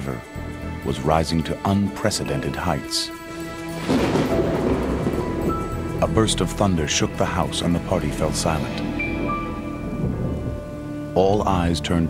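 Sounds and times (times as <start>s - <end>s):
steady rain: 3.3s - 6.2s, 8.3s - 11.5s
rolling thunder: 3.5s - 6.7s, 8.1s - 11.2s.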